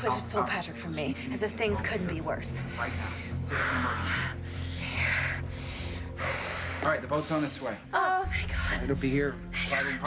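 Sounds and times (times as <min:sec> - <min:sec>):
low steady music score: 0:00.0 - 0:10.0.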